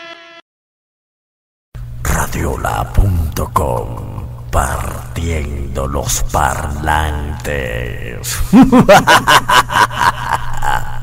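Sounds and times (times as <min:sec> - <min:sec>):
man's laugh with voice effects: 0:08.4 - 0:11.0.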